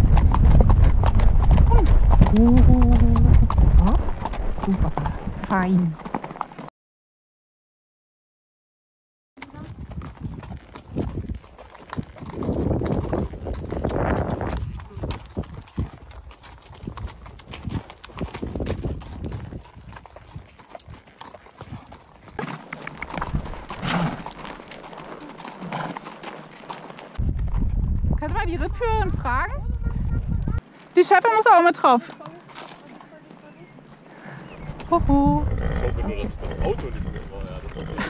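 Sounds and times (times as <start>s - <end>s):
hooves clip-clopping on gravel: 0.0s - 6.7s, 9.4s - 38.0s.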